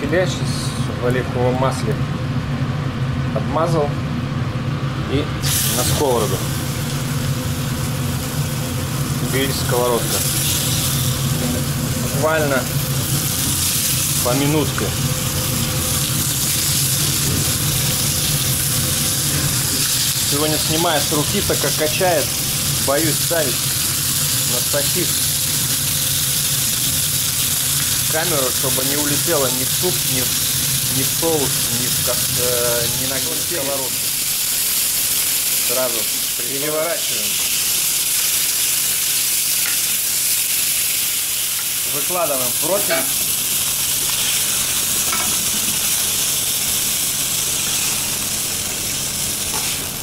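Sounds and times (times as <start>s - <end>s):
low machinery hum: 0.0s - 34.6s
chicken sizzling in grill pan: 5.4s - 50.0s.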